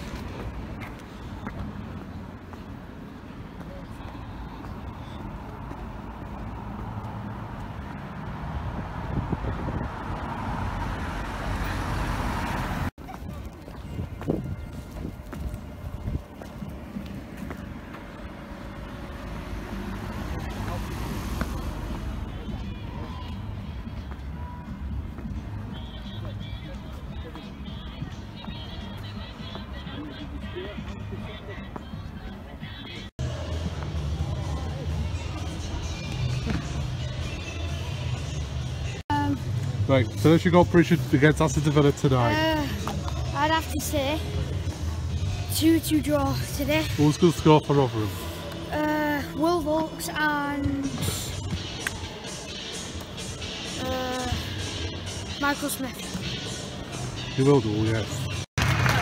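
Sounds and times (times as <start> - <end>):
road traffic: 0.0 - 59.0
vehicle passing: 4.3 - 12.9, 16.6 - 24.0
wind rumbling on microphone: 5.2 - 17.1.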